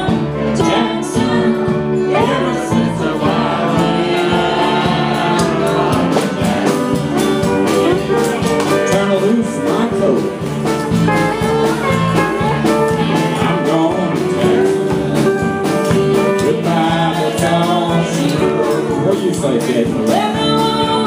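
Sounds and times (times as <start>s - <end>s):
live band with guitars: 0.0s - 21.0s
person singing: 0.0s - 21.0s.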